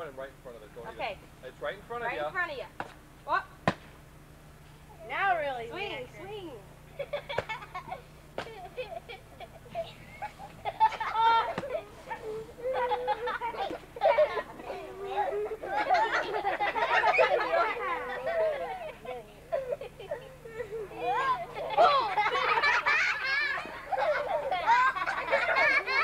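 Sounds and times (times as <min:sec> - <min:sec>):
children calling and chattering: 0:04.9 - 0:26.0.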